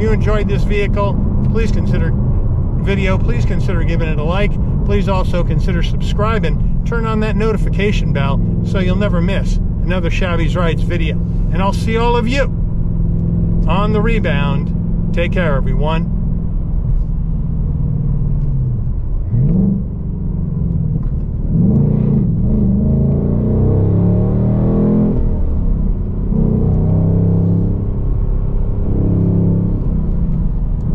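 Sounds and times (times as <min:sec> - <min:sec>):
car engine revving: 0:00.0 - 0:30.9.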